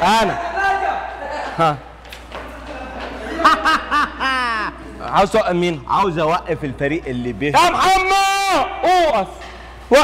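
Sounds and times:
man laughing: 0:02.7 - 0:05.1.

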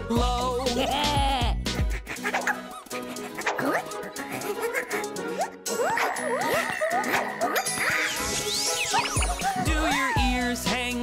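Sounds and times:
light background music: 0:00.0 - 0:11.0
squeaky cartoon vocal sounds: 0:01.8 - 0:10.6.

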